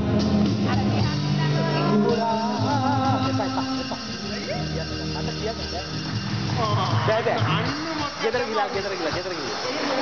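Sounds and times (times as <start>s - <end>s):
electronic keyboard notes: 0.0s - 9.6s
people talking and calling out: 0.0s - 10.0s.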